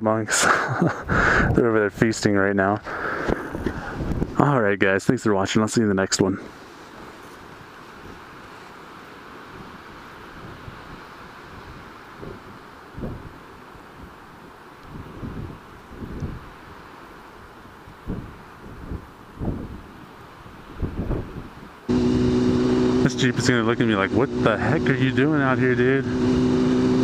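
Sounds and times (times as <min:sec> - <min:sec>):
wind buffeting microphone: 0:03.4 - 0:04.4, 0:10.4 - 0:13.4, 0:14.9 - 0:16.6, 0:18.0 - 0:27.0
steady background hiss: 0:04.8 - 0:21.9.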